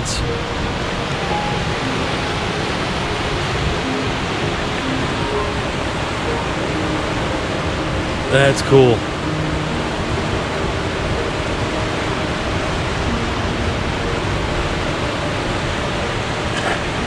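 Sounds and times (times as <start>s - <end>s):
river rapids rushing over rocks: 0.0s - 17.0s.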